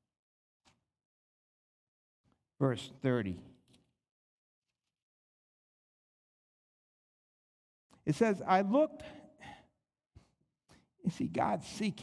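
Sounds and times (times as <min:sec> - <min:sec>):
man reading aloud: 0:02.6 - 0:03.5, 0:08.1 - 0:09.3, 0:11.0 - 0:12.0.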